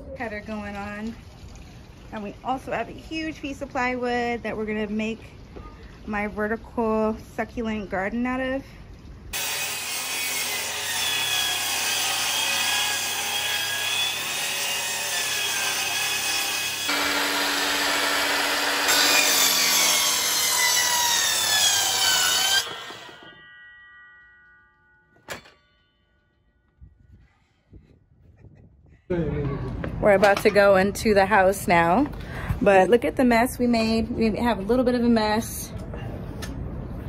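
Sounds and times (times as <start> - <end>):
mitre saw cutting wood: 9.4 - 23.3.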